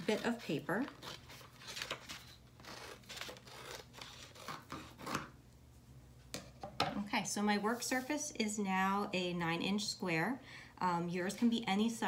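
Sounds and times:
scissors cutting paper: 0.0 - 5.3.

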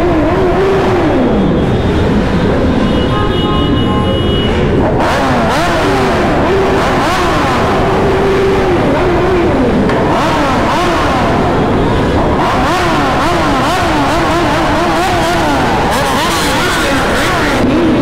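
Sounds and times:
motorcycle engines revving: 0.0 - 18.0.

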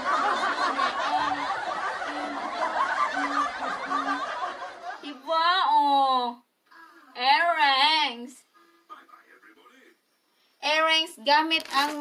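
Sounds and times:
people laughing: 0.0 - 5.3.

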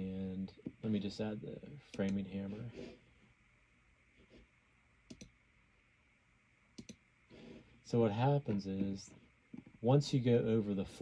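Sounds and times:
faint room hum: 0.0 - 11.0
computer mouse clicking: 1.9 - 2.2, 5.1 - 5.4, 6.8 - 7.0.

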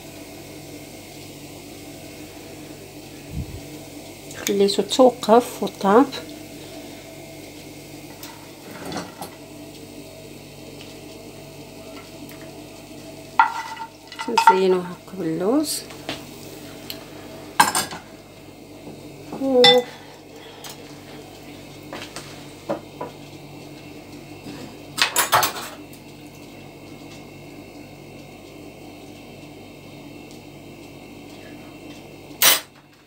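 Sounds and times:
low hum: 2.0 - 4.4
spoon and dishes clinking: 13.4 - 14.6, 19.6 - 19.9.

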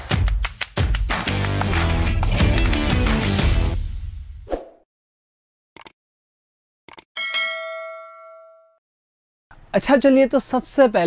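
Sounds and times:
bell-like ding: 7.2 - 8.8.

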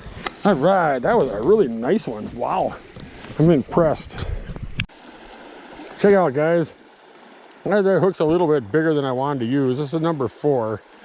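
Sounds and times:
small creek flowing: 0.0 - 11.0.

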